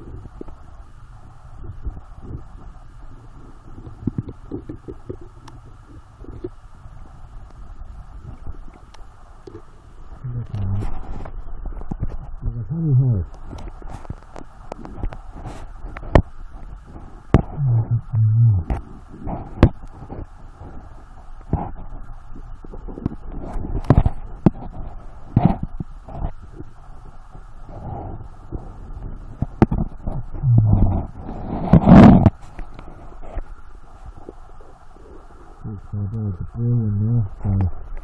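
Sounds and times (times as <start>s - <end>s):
muffled low hums from diver: 0.0s - 38.0s
stones and tools clicking underwater: 10.7s - 12.4s, 13.3s - 17.6s, 22.6s - 26.7s, 29.3s - 33.5s.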